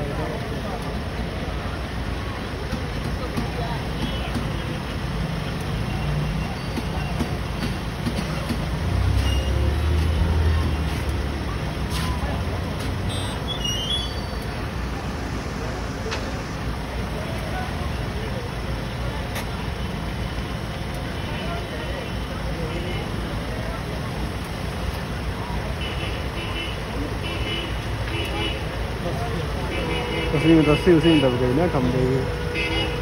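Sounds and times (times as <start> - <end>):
faint indistinct voices: 0.0 - 33.0
vehicle engines idling: 0.0 - 33.0.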